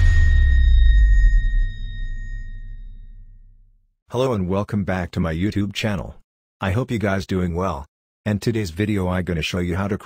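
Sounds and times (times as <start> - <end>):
deep rumble: 0.0 - 3.8
high ringing tone: 0.0 - 3.8.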